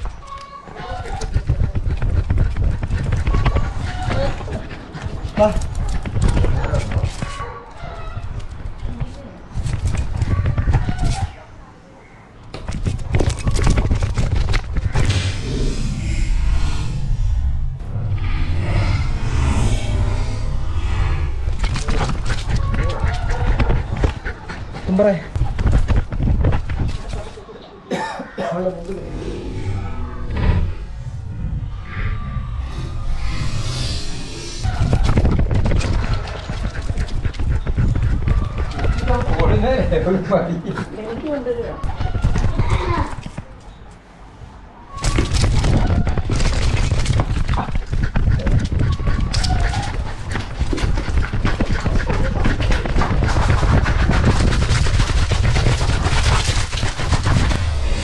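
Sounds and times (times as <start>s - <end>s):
rumble of knocks and rubbing: 0.0s - 7.4s, 12.6s - 27.4s, 28.8s - 40.1s, 45.3s - 58.0s
dog panting: 1.2s - 5.7s, 21.9s - 27.1s, 35.6s - 39.8s, 47.7s - 57.6s
person coughing: 27.9s - 28.6s.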